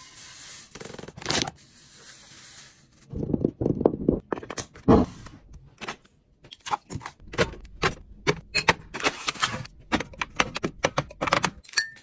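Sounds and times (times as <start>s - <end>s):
cans and bottles clicking and tapping: 9.8s - 12.0s
glass clink: 11.7s - 12.0s.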